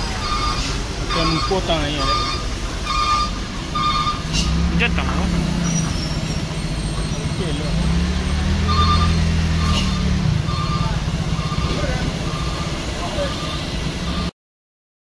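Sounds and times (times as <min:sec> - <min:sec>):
truck diesel engine under load: 0:00.0 - 0:14.3
short high electronic beeps: 0:00.2 - 0:04.3, 0:08.6 - 0:14.3.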